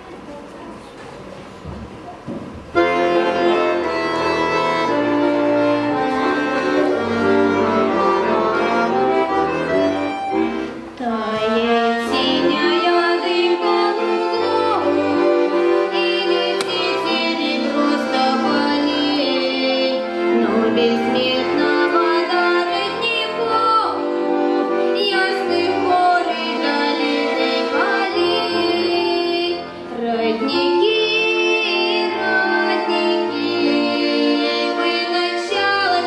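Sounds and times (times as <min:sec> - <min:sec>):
accordion playing: 0:02.6 - 0:36.0.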